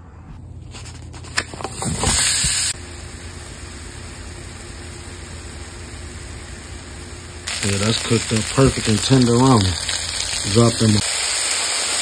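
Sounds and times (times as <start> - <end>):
food sizzling in a hot pan: 2.0 - 12.0.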